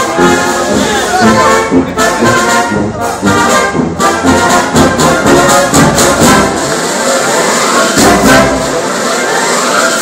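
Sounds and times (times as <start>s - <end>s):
brass marching band: 0.0s - 10.0s.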